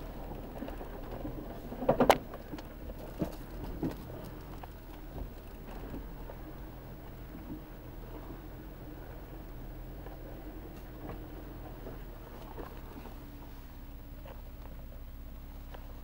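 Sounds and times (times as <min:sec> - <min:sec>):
car engine running at low revs: 0:00.0 - 0:16.0.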